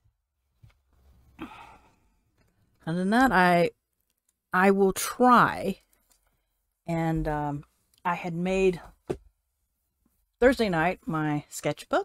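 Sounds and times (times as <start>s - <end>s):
woman sighing: 1.4s - 2.0s.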